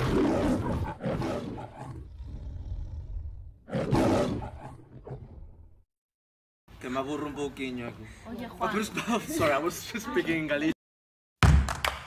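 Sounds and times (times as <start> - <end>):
lion roaring: 0.0 - 5.7.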